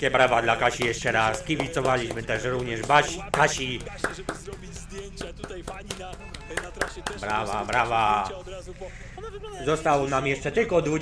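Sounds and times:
people clapping: 0:00.0 - 0:08.4
background music: 0:00.0 - 0:11.0
voices: 0:00.0 - 0:11.0.

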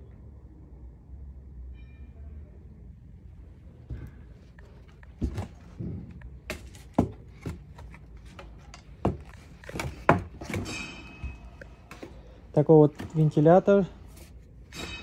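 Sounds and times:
plastic knocks and clatters: 0:05.2 - 0:10.7.

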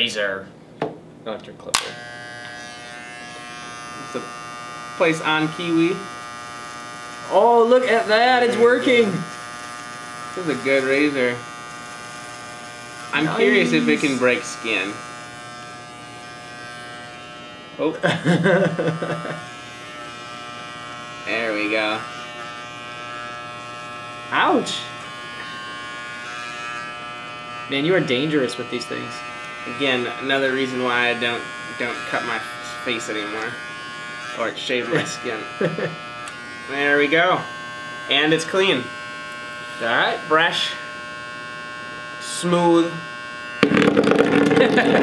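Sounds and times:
electric razor buzzing: 0:01.8 - 0:45.0.

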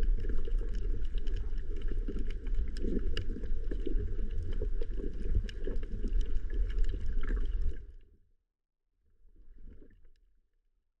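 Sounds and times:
muffled underwater water noise: 0:00.0 - 0:08.2, 0:09.2 - 0:10.2.

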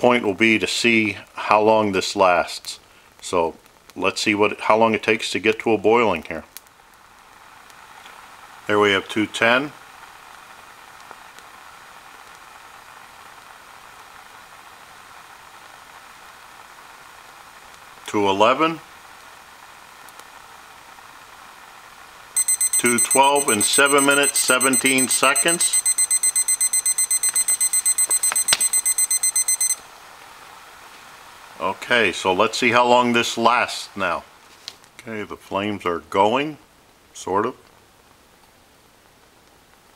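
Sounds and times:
thermometer alarm beeping rapidly: 0:22.4 - 0:29.8.

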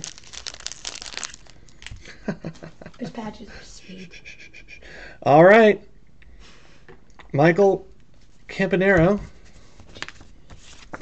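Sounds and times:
foil wrapper crinkling: 0:00.0 - 0:02.0.

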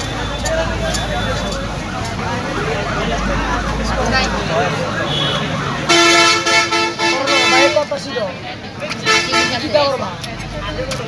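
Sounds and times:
voices: 0:00.0 - 0:11.0
horn steady note: 0:05.0 - 0:07.8.

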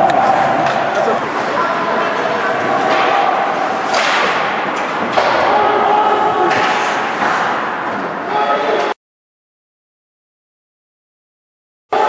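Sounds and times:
spectators' voices: 0:00.0 - 0:09.0.

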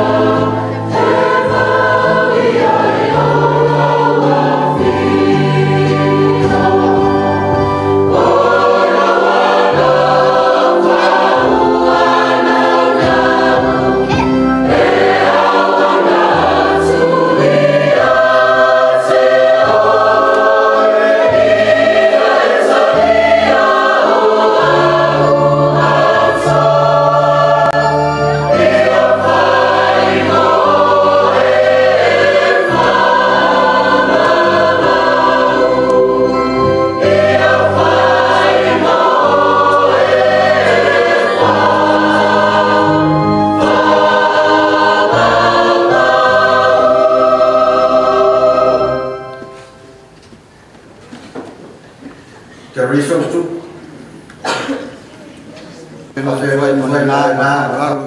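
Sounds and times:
choir singing a hymn: 0:00.0 - 0:50.5, 0:51.4 - 0:58.0.

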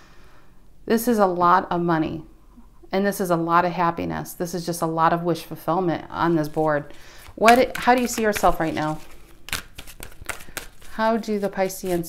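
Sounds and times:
cards clicking and rustling: 0:06.3 - 0:12.0.

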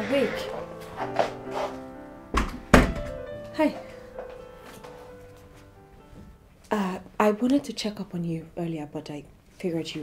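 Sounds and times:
soft background music: 0:00.0 - 0:10.0
thuds on wooden door: 0:02.4 - 0:03.2.

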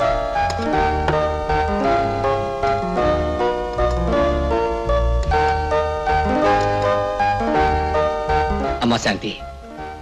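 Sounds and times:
film score melody over bass line: 0:00.0 - 0:10.0.

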